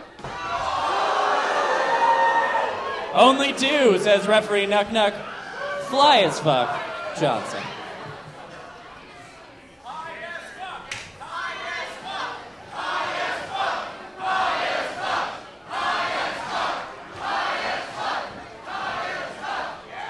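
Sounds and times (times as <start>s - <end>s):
crowd chanting: 0.6s - 8.3s, 11.8s - 20.0s.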